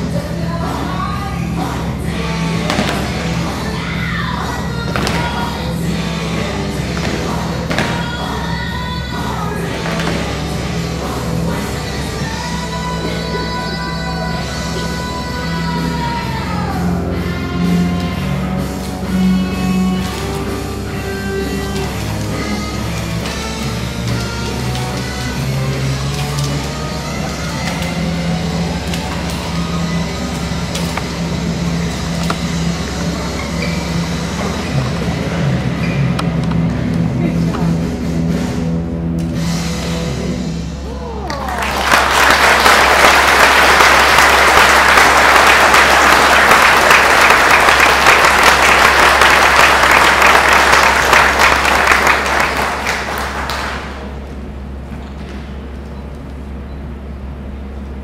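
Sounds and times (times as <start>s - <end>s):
background music with bass line: 0.0s - 54.0s
audience applause: 41.2s - 54.0s.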